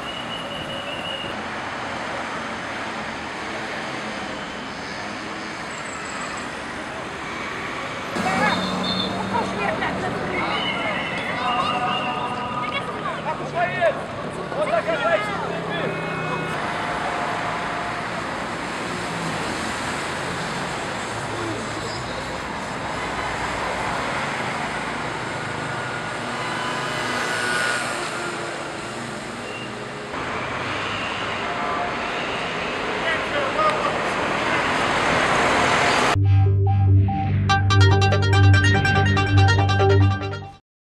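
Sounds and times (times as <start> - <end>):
passing vehicles: 0.0 - 36.2
cars driving past: 1.5 - 36.2.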